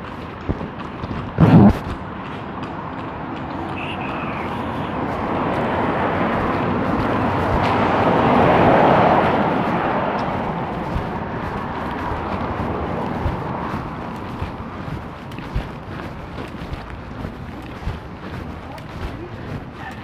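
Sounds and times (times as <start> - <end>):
vehicle driving past: 2.0 - 20.0.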